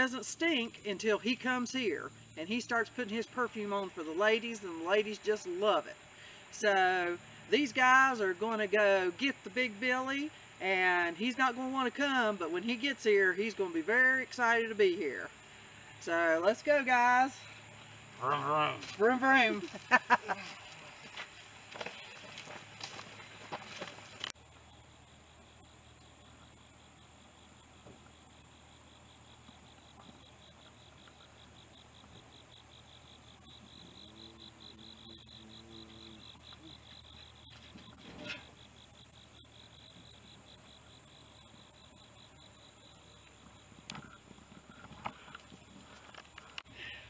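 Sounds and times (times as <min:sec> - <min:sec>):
insect chirring: 0:00.0 - 0:47.0
people laughing: 0:19.5 - 0:20.9.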